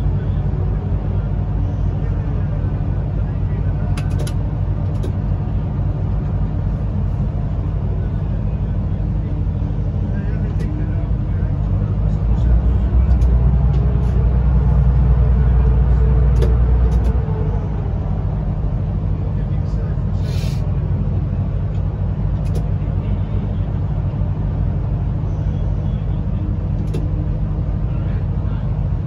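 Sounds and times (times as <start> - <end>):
train rumble in tunnel: 0.0 - 29.0.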